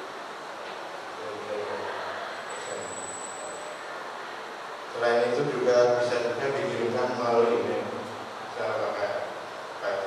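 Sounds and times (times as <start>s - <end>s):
room noise hiss: 0.0s - 10.0s
faint high whistle: 2.5s - 3.7s.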